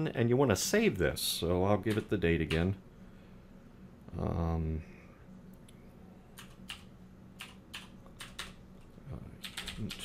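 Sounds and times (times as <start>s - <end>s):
computer keyboard typing: 1.8s - 2.7s, 6.4s - 10.0s.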